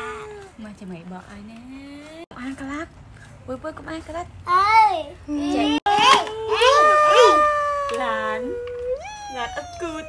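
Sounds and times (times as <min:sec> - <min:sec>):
child exclaiming wow: 0:05.5 - 0:10.0.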